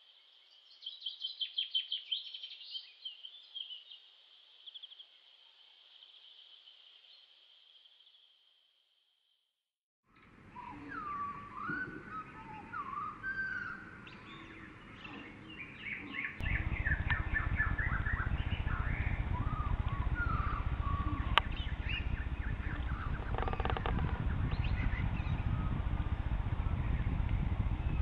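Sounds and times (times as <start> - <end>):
songbirds singing and chirping: 0.0 - 8.3, 10.2 - 28.0
steady low rumble: 16.4 - 28.0.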